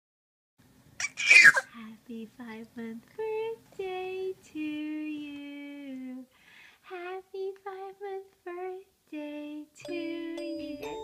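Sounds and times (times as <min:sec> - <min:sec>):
person sneezing: 0:01.0 - 0:01.7.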